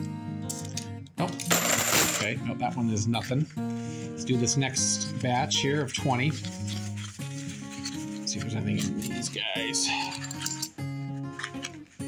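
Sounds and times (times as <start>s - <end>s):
background music held notes: 0.0s - 12.0s
coins rattling: 1.4s - 2.4s, 9.9s - 10.8s.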